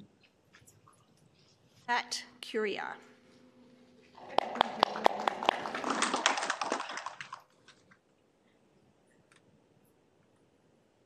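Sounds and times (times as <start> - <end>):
audience clapping: 4.1 - 7.6.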